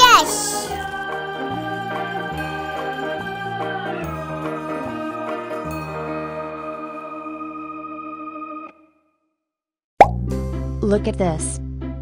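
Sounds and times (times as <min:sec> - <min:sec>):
background music: 0:00.0 - 0:08.7, 0:10.1 - 0:12.0
sharp plop: 0:10.0 - 0:10.3.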